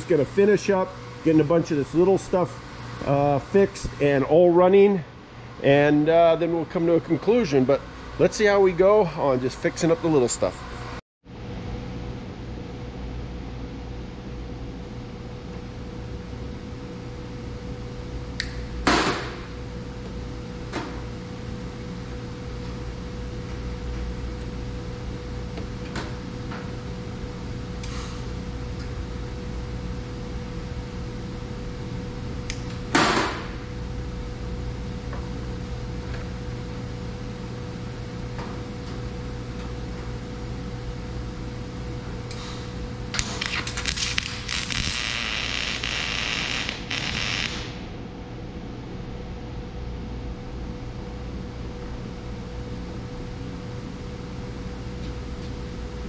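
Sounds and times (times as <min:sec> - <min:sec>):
steady low hum: 0:00.0 - 0:56.0
arc welding bursts: 0:43.4 - 0:47.9.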